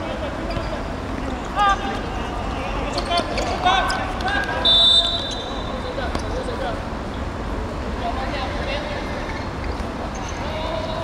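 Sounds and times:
referee whistle blast: 0:04.6 - 0:05.7.

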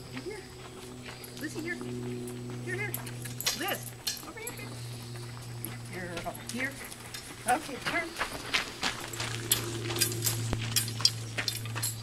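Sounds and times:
cart wheels crunching on gravel: 0:00.0 - 0:12.0
footsteps on gravel: 0:00.0 - 0:12.0.

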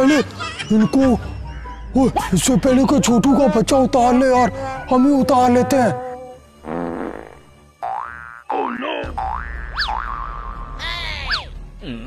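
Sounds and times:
cartoon boings: 0:07.8 - 0:11.5.

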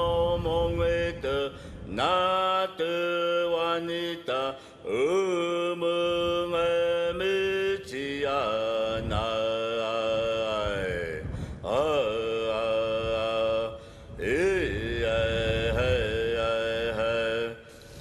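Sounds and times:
person chanting long held notes: 0:02.0 - 0:17.8.

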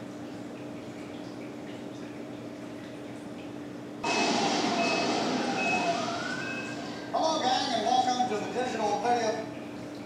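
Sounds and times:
sudden burst of noise: 0:04.0 - 0:07.2.

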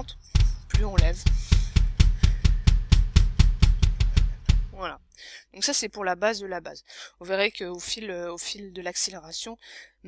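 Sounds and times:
electronic kick drum beating: 0:00.0 - 0:04.9.

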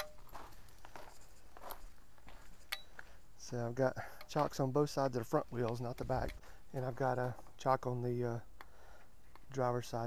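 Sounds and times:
footsteps scuffing: 0:00.0 - 0:03.1.

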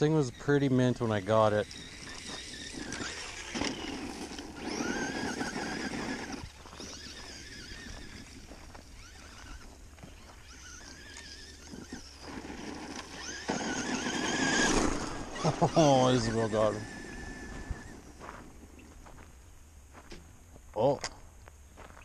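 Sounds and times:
toy truck motor whining: 0:00.0 - 0:18.2
tyres on gravel: 0:00.0 - 0:22.0.

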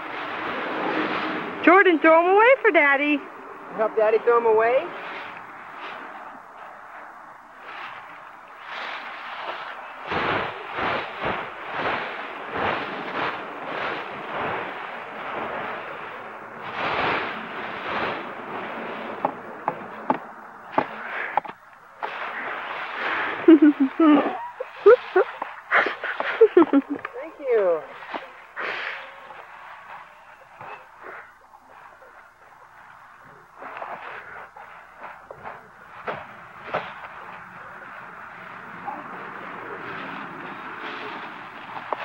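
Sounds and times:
dry leaves crunching and rustling: 0:04.9 - 0:19.2, 0:34.8 - 0:42.0.

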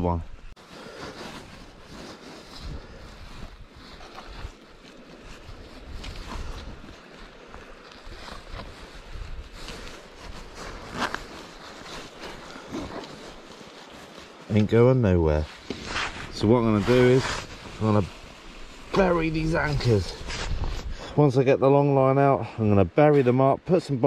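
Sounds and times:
rope rustling: 0:00.6 - 0:21.0
wind on microphone: 0:05.4 - 0:07.1, 0:18.6 - 0:21.1.

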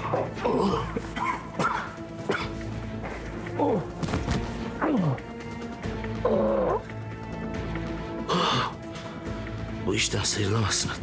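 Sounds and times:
man coughing: 0:00.6 - 0:03.2.

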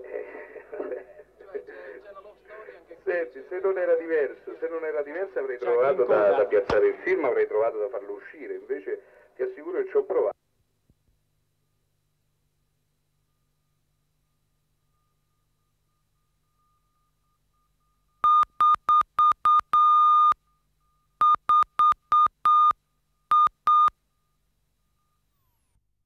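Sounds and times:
faint steady tone: 0:07.9 - 0:25.8
electronic beeps: 0:16.6 - 0:24.0.

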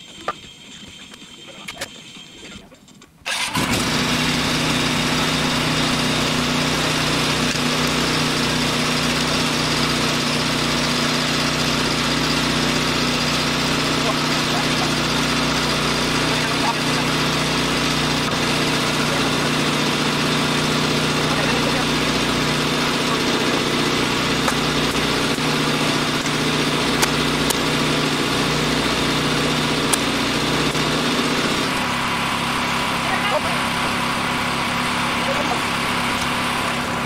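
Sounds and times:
motor running: 0:00.0 - 0:37.0.

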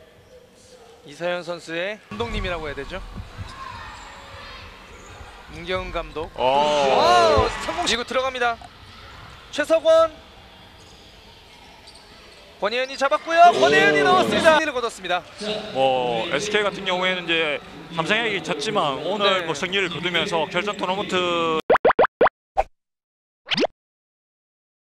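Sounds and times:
gymnasium background noise: 0:00.0 - 0:21.5
cartoon upward-sliding bloops: 0:21.7 - 0:22.7, 0:23.5 - 0:23.7.

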